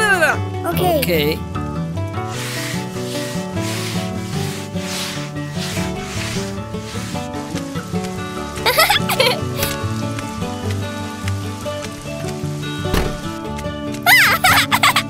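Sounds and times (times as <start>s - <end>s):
background music: 0.0s - 15.0s
push broom sweeping floor: 2.2s - 15.0s.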